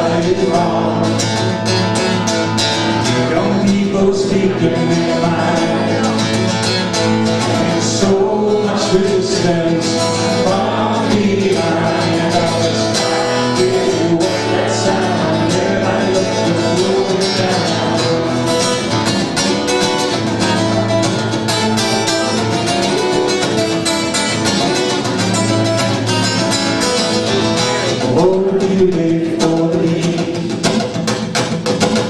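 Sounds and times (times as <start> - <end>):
people singing folk song: 0.0 - 21.0, 27.5 - 31.0
strummed acoustic guitar: 0.0 - 32.0.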